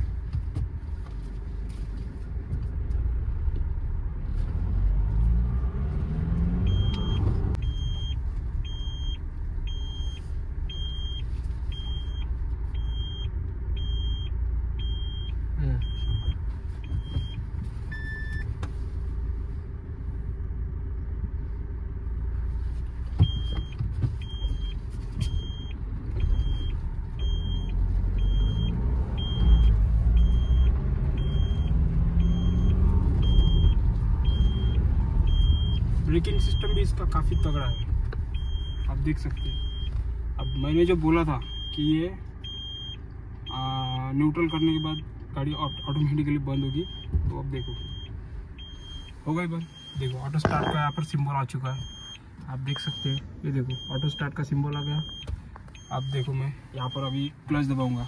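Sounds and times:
car engine and road noise: 0.0 - 58.0
turn indicator ticking: 6.4 - 18.8, 23.1 - 58.0.

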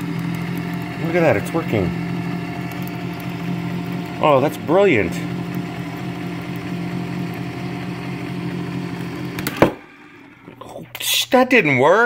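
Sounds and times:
electric can opener motor: 0.0 - 10.8.

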